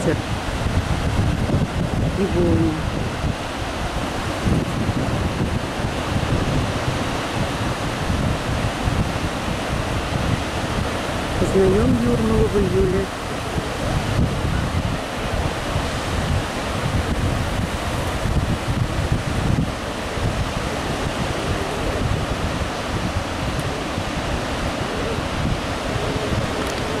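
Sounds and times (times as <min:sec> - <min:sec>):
surf breaking on beach: 0:00.0 - 0:27.0
wind buffeting microphone: 0:00.0 - 0:27.0.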